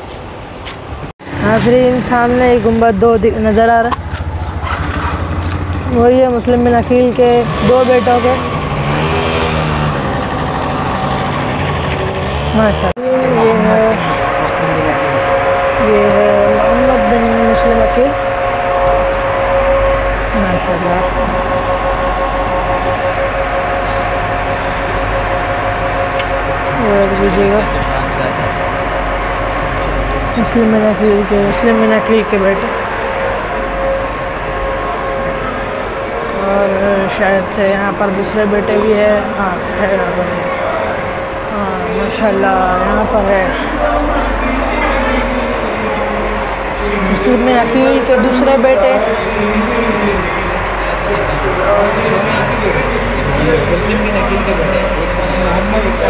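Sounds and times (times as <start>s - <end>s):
vehicle engine humming: 0.0s - 56.0s.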